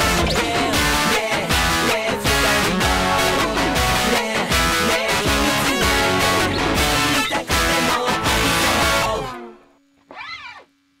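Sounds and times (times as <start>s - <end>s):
guitar music: 0.0s - 10.7s
cat meowing: 10.1s - 10.7s.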